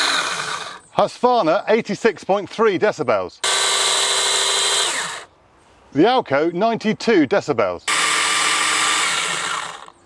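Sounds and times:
battery chainsaw whining: 0.0 - 0.9, 3.4 - 5.3, 7.9 - 10.0.

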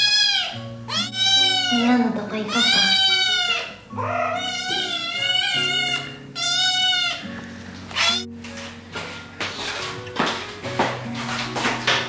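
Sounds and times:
kitten meowing: 0.0 - 8.3.

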